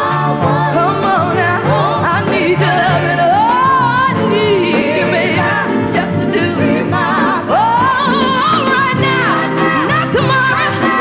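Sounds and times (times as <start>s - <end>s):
band playing: 0.0s - 11.0s.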